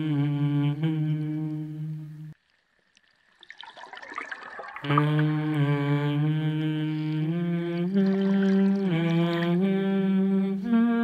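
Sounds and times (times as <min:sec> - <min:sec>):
person humming slow notes: 0:00.0 - 0:02.4, 0:04.8 - 0:11.0.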